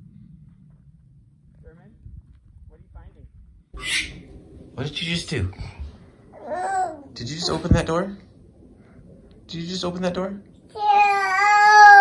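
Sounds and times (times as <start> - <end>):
low rumble: 0.0 - 10.8
toddler making short vocal sounds: 6.4 - 7.7
toddler shrieking: 6.4 - 7.8, 10.8 - 12.0.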